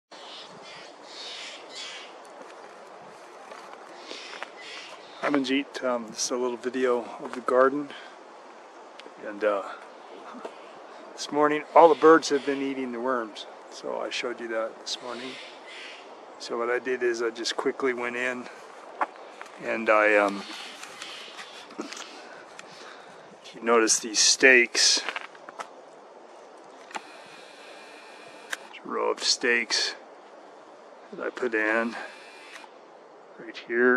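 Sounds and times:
birds calling: 0.1s - 6.4s, 9.3s - 14.0s, 14.8s - 25.6s, 26.6s - 29.9s, 30.5s - 33.8s
faint steady background noise: 0.1s - 33.9s
faint steady hiss: 0.1s - 33.9s.

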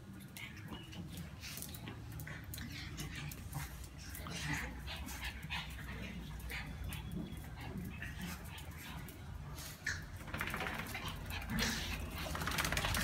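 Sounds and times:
dogs play-fighting vocalizing: 0.0s - 13.0s.

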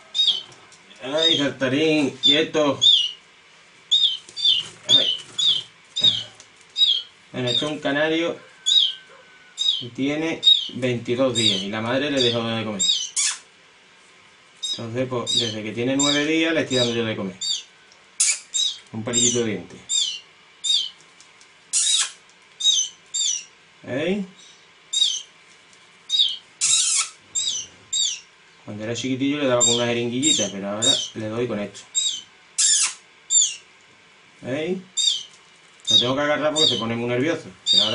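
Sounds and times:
canary chick chirping: 0.0s - 3.3s, 3.9s - 13.5s, 14.6s - 21.0s, 21.7s - 23.6s, 24.3s - 25.4s, 26.0s - 33.7s, 34.8s - 37.9s.

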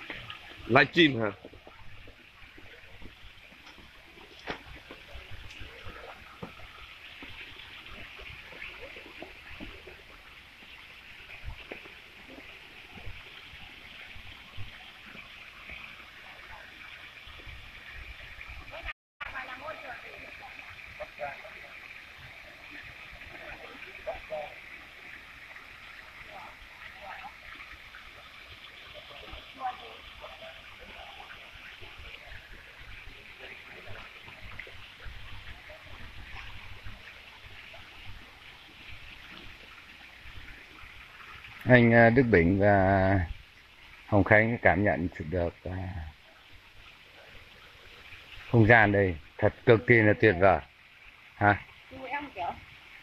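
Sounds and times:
fountains splashing: 0.0s - 53.0s.

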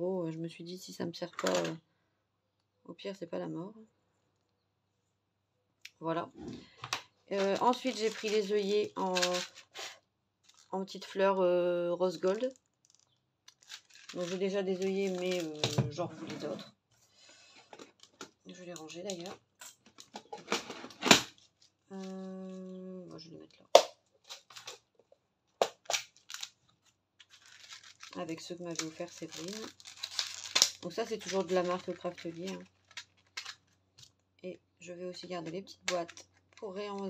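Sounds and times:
small clicks and rustles: 6.7s - 9.8s, 10.4s - 10.8s, 12.2s - 15.8s, 17.6s - 20.7s, 21.3s - 22.8s, 24.2s - 34.3s, 35.4s - 37.0s.

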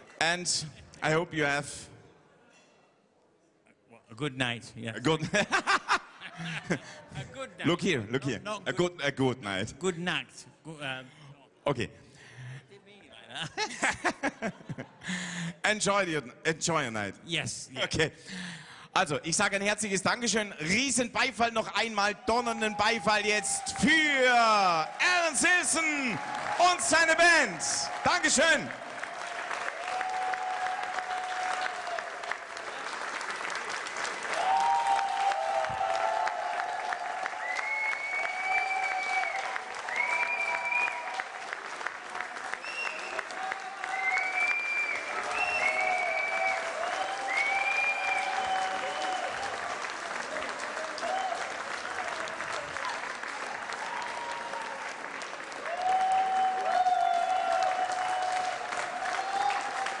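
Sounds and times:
audience clapping: 22.2s - 60.0s
crowd calling out: 22.4s - 28.8s.

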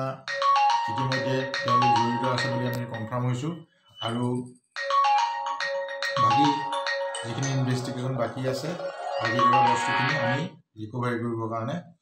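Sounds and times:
marimba ringtone melody: 0.2s - 10.4s
man speaking: 0.9s - 4.5s, 6.2s - 11.9s.

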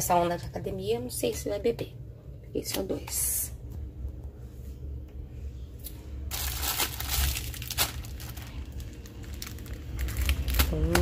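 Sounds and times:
plastic bags rustling: 6.2s - 11.0s.

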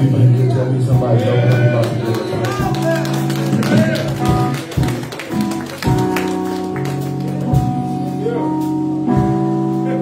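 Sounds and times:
worship band playing: 0.0s - 10.0s.

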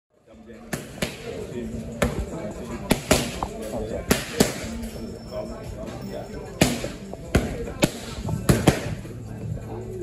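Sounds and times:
boxing gloves smacking mitts: 6.6s - 9.0s.

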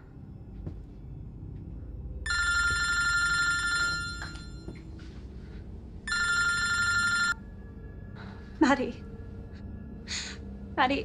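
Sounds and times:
telephone ringing: 2.3s - 4.7s, 6.1s - 7.4s.

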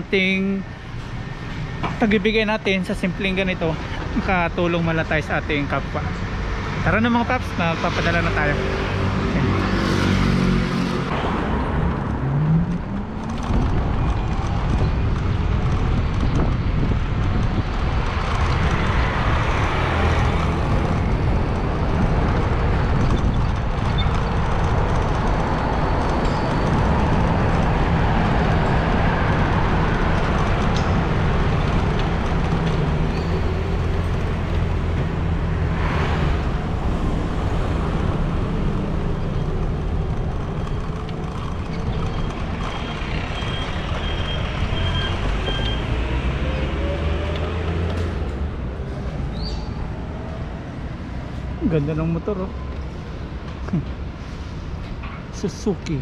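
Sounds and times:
road and traffic noise: 0.0s - 56.0s
vehicles passing close by: 0.0s - 56.0s
wind rush over microphone: 8.8s - 42.6s.

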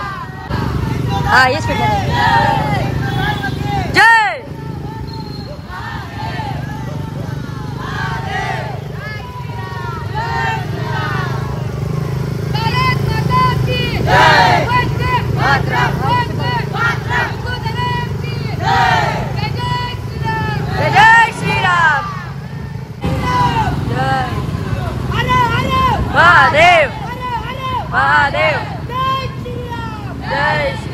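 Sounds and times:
men shouting: 0.0s - 4.9s, 5.7s - 11.7s, 12.6s - 22.4s, 23.0s - 30.9s
motorcycle engines running: 0.0s - 30.9s.

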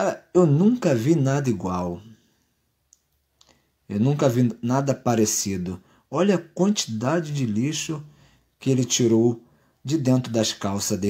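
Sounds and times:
man talking: 0.0s - 2.3s, 3.9s - 11.0s
faint clicks: 2.9s - 3.6s.

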